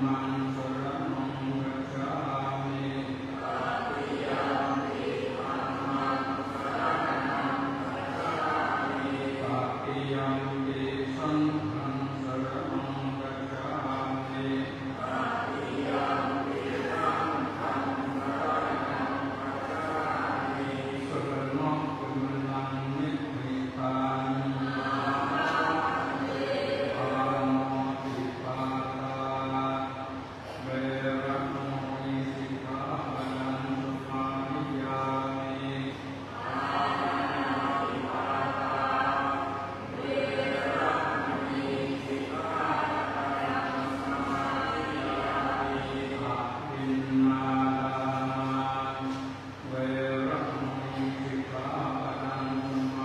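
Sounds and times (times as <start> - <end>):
group chanting in unison: 2.0 - 11.7, 12.4 - 53.0.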